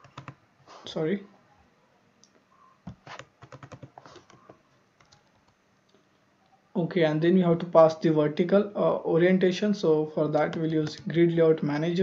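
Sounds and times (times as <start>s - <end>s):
computer keyboard typing: 0.0s - 0.4s, 2.8s - 5.6s.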